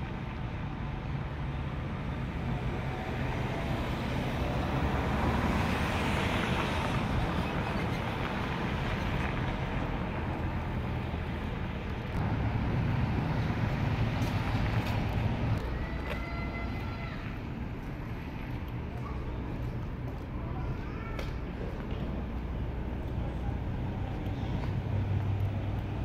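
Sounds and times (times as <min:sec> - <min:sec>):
passing cars rushing: 0:01.7 - 0:16.0.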